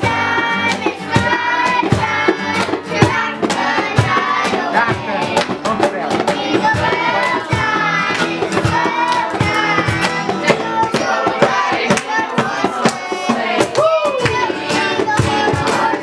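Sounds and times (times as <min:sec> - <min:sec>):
group singing: 0:00.0 - 0:16.0
hand-clapping: 0:00.4 - 0:01.7, 0:02.5 - 0:02.9, 0:05.3 - 0:06.4, 0:07.2 - 0:16.0.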